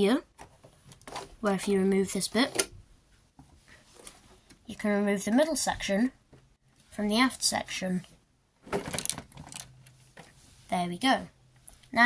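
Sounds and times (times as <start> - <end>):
plastic bricks clicking and rattling: 8.7 - 9.7.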